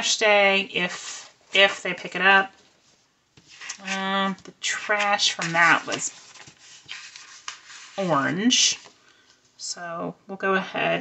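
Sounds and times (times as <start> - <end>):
paper sheets rustling: 2.6 - 9.3.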